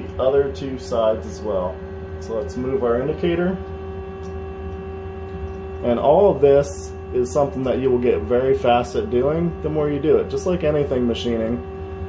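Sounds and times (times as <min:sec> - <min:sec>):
lathe humming: 0:00.0 - 0:12.0.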